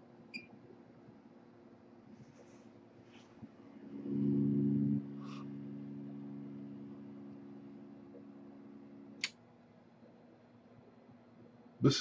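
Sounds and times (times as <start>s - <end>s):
pressure controller humming: 3.6s - 9.3s.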